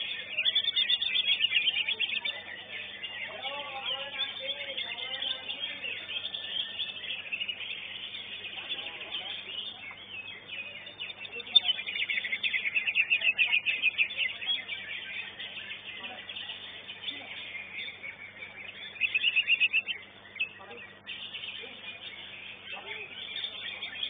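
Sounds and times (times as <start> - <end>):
bird singing high chirps: 0.0 - 24.0
faint crowd voices: 0.0 - 24.0.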